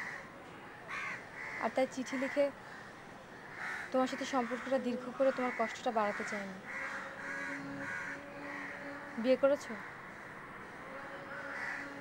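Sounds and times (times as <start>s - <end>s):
crows cawing: 0.0s - 0.3s, 0.9s - 10.4s, 11.3s - 12.0s.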